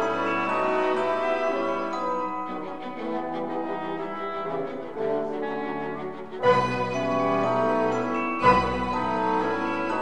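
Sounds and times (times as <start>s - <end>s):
orchestral music with brass chords: 0.0s - 10.0s.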